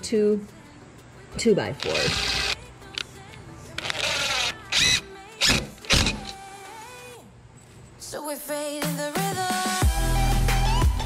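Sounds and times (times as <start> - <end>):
cordless drill driving screws: 1.8 - 2.6, 3.8 - 6.4.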